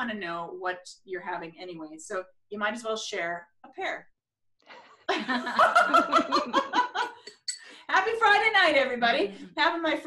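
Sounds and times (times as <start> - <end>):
woman laughing: 5.1 - 7.4.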